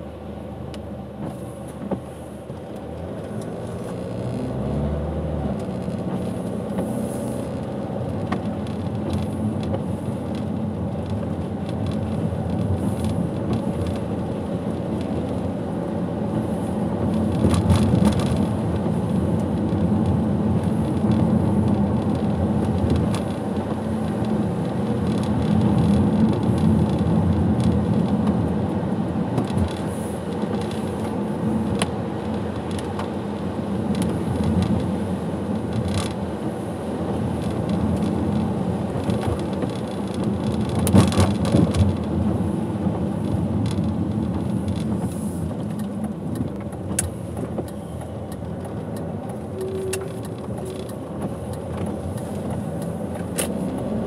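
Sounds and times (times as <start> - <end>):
car engine running: 0.0 - 54.0
tyres on wet road: 0.0 - 54.0.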